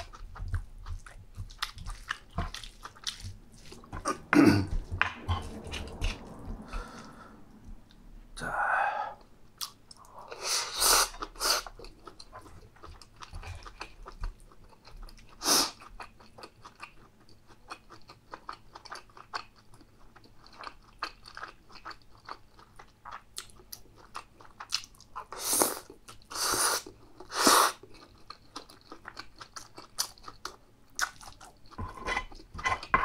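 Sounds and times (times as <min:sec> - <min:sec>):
wet chewing and smacking: 0:00.0 - 0:06.9, 0:11.2 - 0:32.9.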